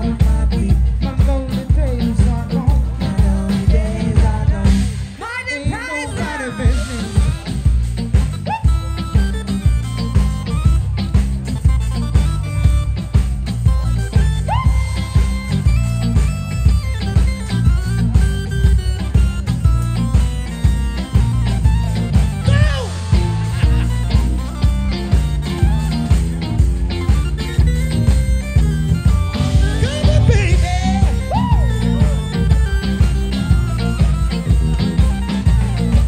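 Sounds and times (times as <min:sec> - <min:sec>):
live soul band playing: 0:00.0 - 0:36.0
pitch-bending lead line: 0:02.1 - 0:36.0.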